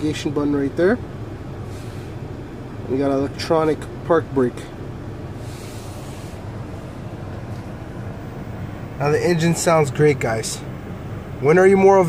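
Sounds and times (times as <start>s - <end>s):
car engine idling: 0.0s - 12.0s
faint hiss: 1.5s - 2.4s, 5.3s - 7.9s.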